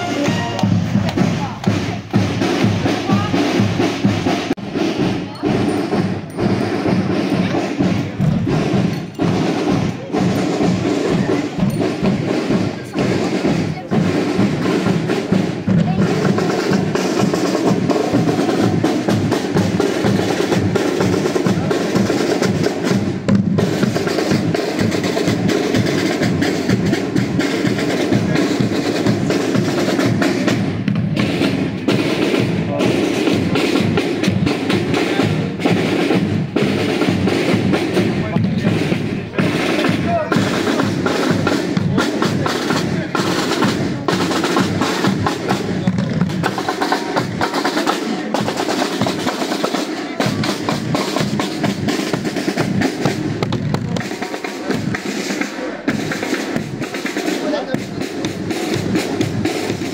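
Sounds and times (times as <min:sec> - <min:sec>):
marching snare drums: 0:00.0 - 0:59.9.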